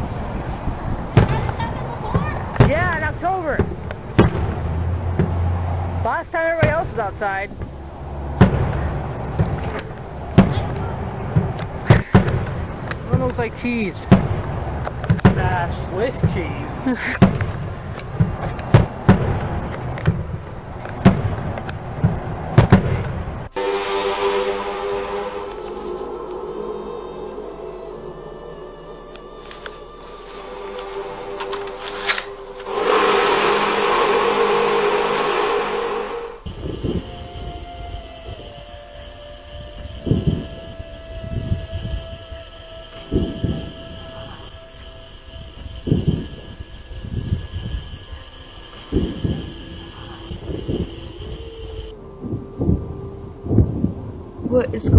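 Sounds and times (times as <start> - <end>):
horn-like drone: 0.0 - 22.7, 23.5 - 54.9
low thump: 1.1 - 5.6, 6.6 - 13.3.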